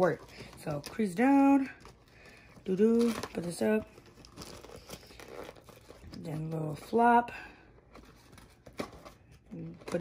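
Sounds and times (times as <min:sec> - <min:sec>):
plastic wrapper crinkling: 0:00.0 - 0:06.6.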